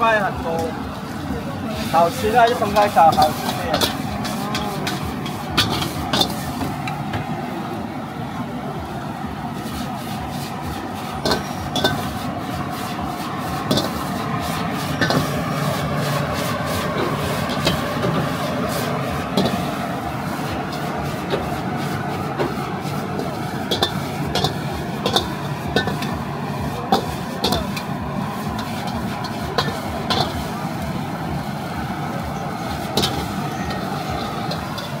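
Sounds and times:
gas burner roaring: 0.0 - 35.0
metal ladle clanking on wok: 2.5 - 7.0, 11.2 - 12.2, 13.6 - 15.4, 17.0 - 19.8, 23.2 - 26.2, 26.9 - 28.0, 28.6 - 30.5, 32.5 - 35.0.

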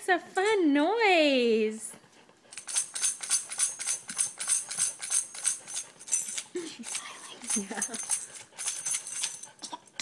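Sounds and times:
tambourine jingles rattling: 2.5 - 9.6.

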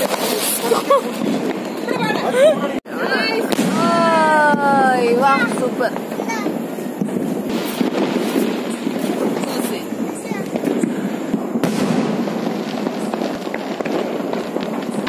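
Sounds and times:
fireworks bursting and crackling: 0.0 - 15.0.

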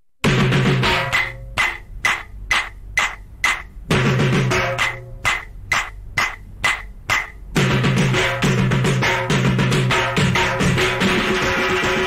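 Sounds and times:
ringing percussion strikes: 0.2 - 12.0.

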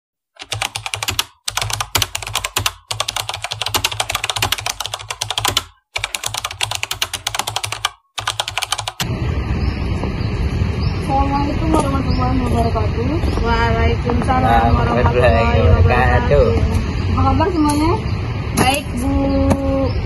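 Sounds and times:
fast keyboard typing: 0.4 - 9.1
outdoor background noise: 9.0 - 20.0.

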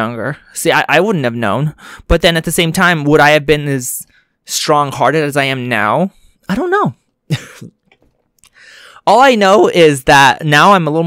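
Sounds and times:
breath in: 8.4 - 9.0.

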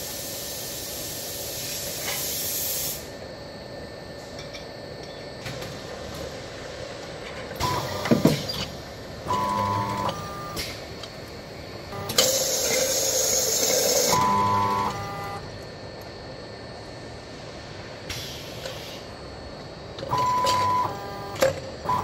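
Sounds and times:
loud hiss: 0.0 - 3.2
servo motors whining: 9.3 - 10.6, 11.9 - 12.8, 13.9 - 15.4, 20.1 - 22.0.

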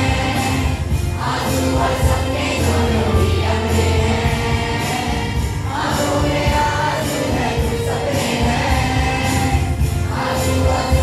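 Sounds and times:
choir singing through loudspeaker: 0.0 - 11.0
percussion beat: 0.0 - 11.0.

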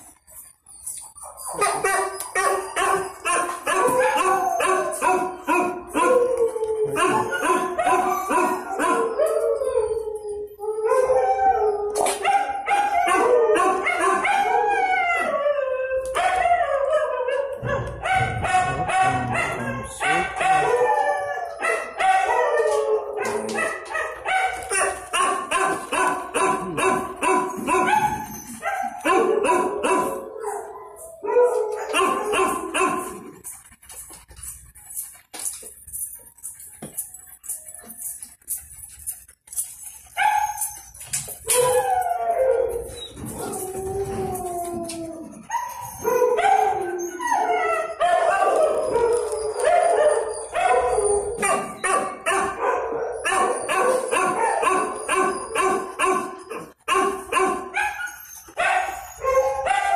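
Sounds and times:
dogs howling: 1.1 - 33.5, 40.1 - 56.8, 57.4 - 59.9
dogs barking rapidly: 17.5 - 21.0, 23.1 - 33.5, 47.7 - 59.9.

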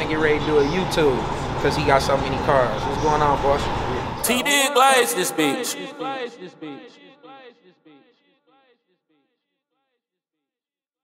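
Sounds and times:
man's voice with echo effect: 0.1 - 8.1.

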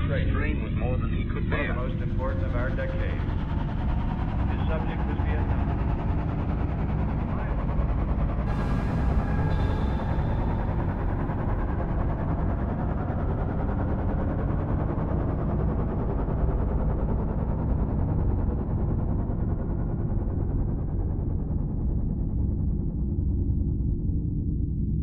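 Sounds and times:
low rumbling synthesizer drone: 0.0 - 25.0.

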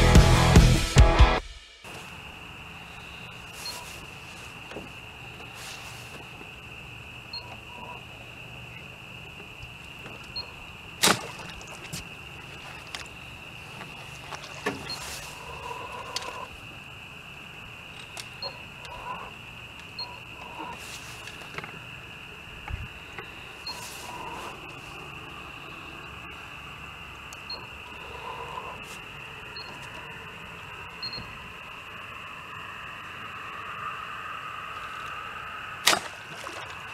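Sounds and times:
rock music: 0.0 - 1.6
crickets chirping: 1.8 - 36.9.

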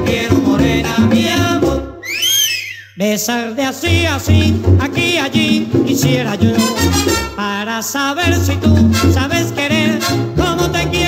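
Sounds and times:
band playing with singing: 0.0 - 2.1, 3.0 - 11.0
high swooping whistle: 2.0 - 3.0.

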